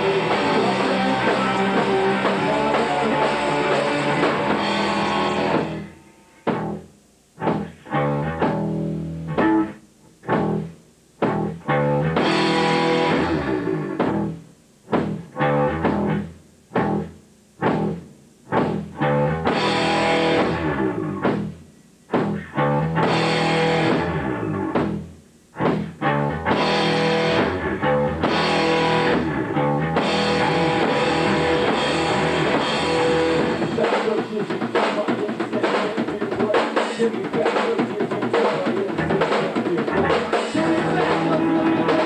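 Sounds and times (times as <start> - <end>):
bass guitar: 0.0 - 42.0
drum kit with cymbals: 0.0 - 42.0
electric guitar: 0.0 - 42.0.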